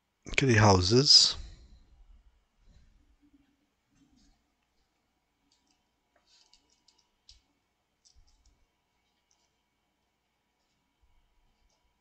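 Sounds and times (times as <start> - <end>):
quiet small clicks: 3.4 - 9.6.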